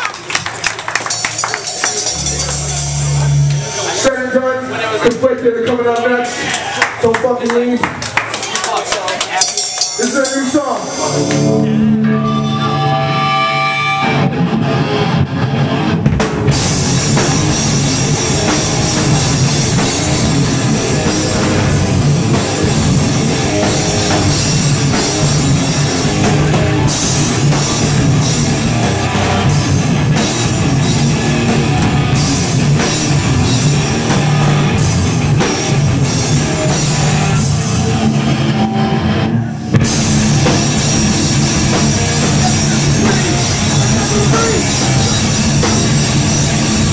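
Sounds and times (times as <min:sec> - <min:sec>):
drum kit: 0:00.0 - 0:07.0, 0:07.8 - 0:46.9
bass guitar: 0:00.0 - 0:07.1, 0:09.9 - 0:46.9
punk band playing live: 0:00.0 - 0:46.9
distorted electric guitar: 0:01.1 - 0:05.0, 0:09.6 - 0:46.9
cymbals ringing: 0:09.4 - 0:13.7.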